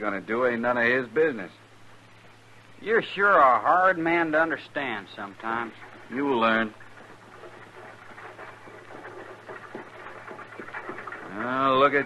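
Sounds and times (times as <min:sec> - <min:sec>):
hooves clopping: 0:02.6 - 0:12.0
wheel noise: 0:02.8 - 0:12.0.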